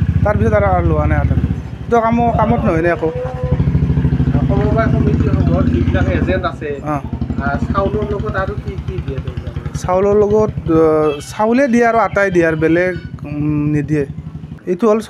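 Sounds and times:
engine rumbling: 0.0 - 15.0
man speaking: 0.2 - 3.6, 4.3 - 15.0.

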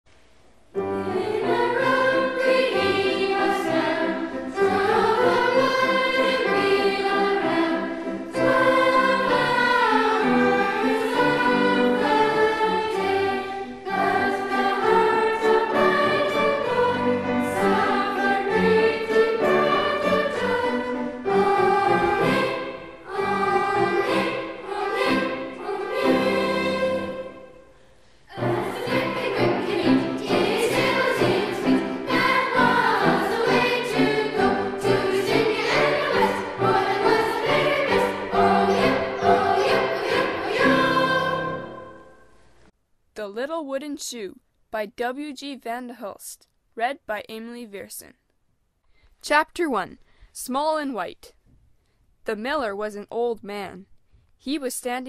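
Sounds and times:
children's choir singing: 0.8 - 42.4.

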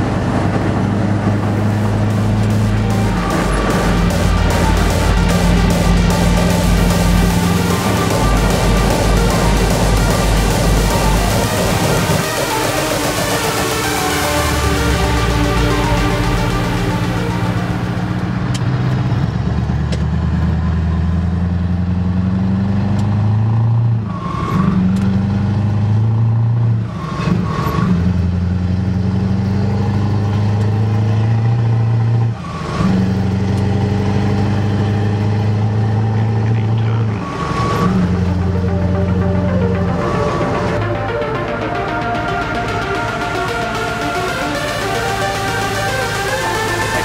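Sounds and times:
truck engine accelerating through gears: 0.0 - 47.0.

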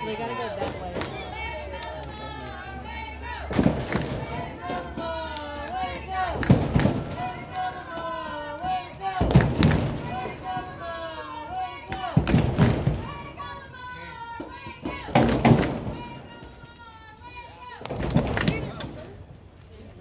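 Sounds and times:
voices calling and chattering: 0.0 - 20.0.

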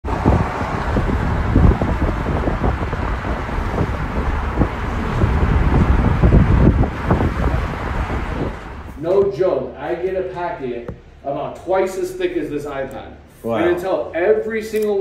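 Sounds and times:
car road noise rumble: 0.0 - 9.4.

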